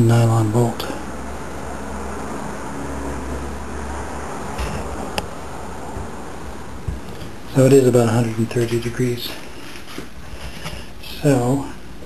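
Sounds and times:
low hum: 0.0 - 9.4.

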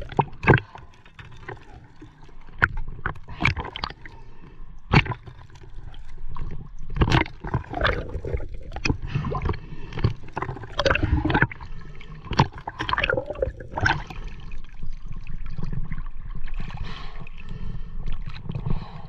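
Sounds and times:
gurgling underwater bubbles: 0.0 - 19.0
low underwater rumble: 4.9 - 19.0.

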